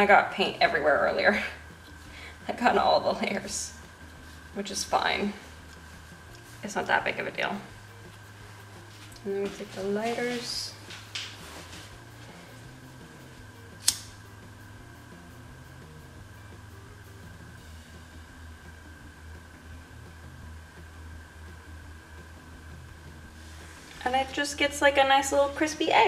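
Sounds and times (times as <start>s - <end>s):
steady low hum: 0.0s - 26.0s
lighter click: 13.8s - 14.3s.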